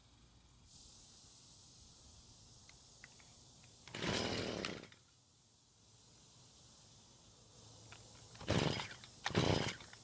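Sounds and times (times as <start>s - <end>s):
small engine turning over: 3.8s - 5.1s, 8.0s - 10.0s
string trimmer pull-start: 3.9s - 5.0s, 8.3s - 10.0s.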